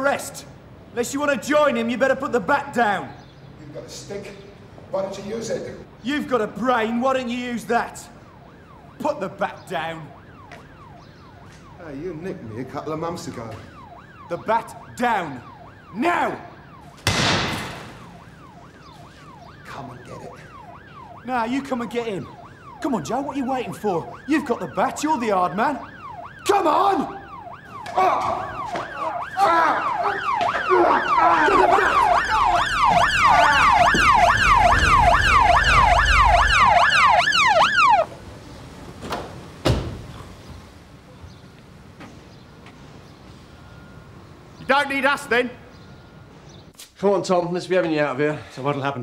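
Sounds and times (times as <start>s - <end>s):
police siren wailing: 6.5s - 39.5s
sharp thumps: 16.9s - 19.1s, 32.0s - 36.9s
bat smashing into car: 17.0s - 18.1s.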